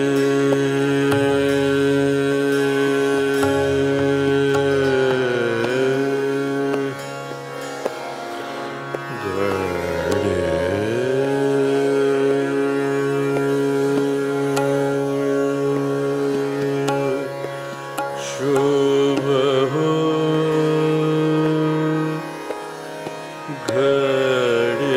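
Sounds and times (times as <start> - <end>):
man singing sustained notes: 0.0 - 7.6, 9.0 - 24.9
tanpura drone: 0.0 - 24.9.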